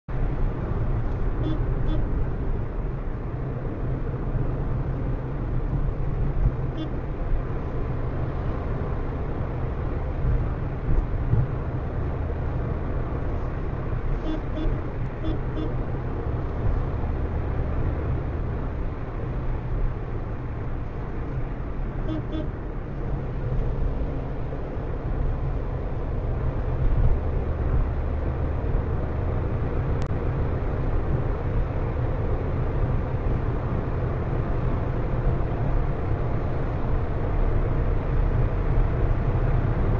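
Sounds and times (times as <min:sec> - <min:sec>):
road and engine rumble in car: 0:00.0 - 0:39.9.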